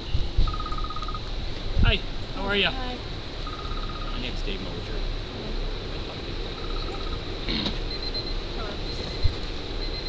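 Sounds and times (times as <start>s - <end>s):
insects trilling: 0.0s - 10.0s
low background hum: 0.0s - 10.0s.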